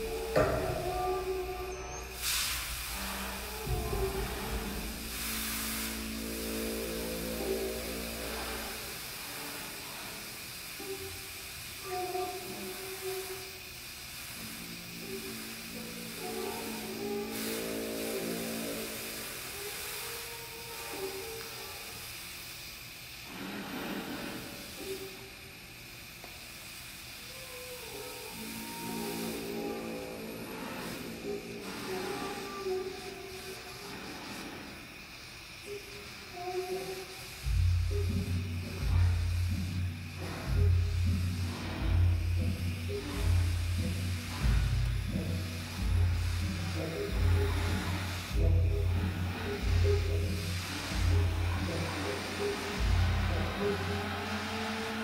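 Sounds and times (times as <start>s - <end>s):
low drone: 0.0s - 13.6s, 14.2s - 21.8s, 27.3s - 34.9s, 35.6s - 55.0s.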